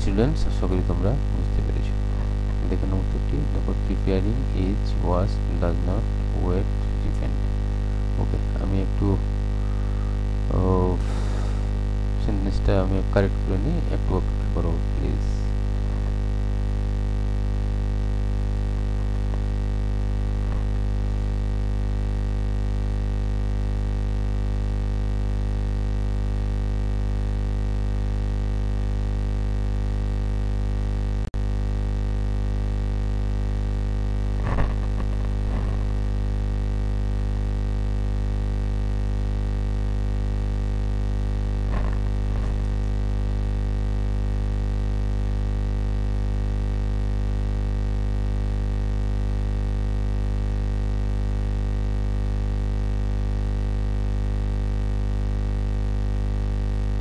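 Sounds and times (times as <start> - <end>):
low electronic hum: 0.0 - 57.0.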